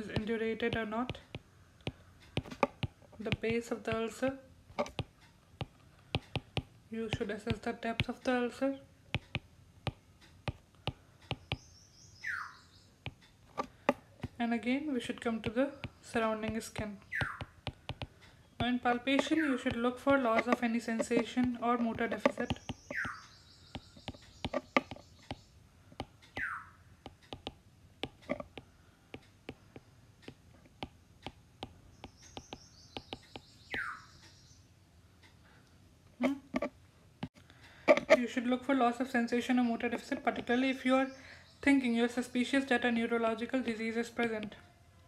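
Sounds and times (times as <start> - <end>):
stylus tapping tablet screen: 0.0 - 11.9, 13.0 - 34.3, 36.2 - 38.3
faint high chirping: 11.3 - 13.3, 15.2 - 25.6, 26.3 - 26.9, 31.8 - 34.7.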